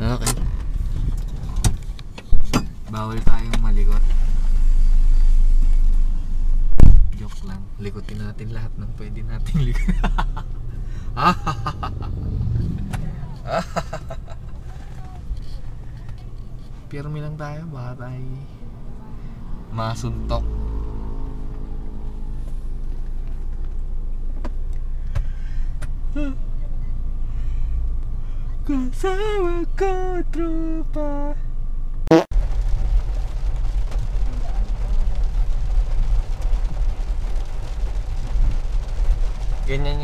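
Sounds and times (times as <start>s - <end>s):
low rumble inside car cabin: 0.0s - 40.0s
loud thump: 6.7s - 7.2s.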